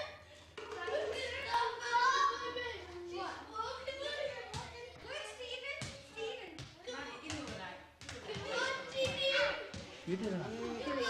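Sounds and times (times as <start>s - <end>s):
children's excited voices: 0.8s - 7.2s, 8.2s - 11.0s
rubber ball bouncing on floor: 6.6s - 10.0s.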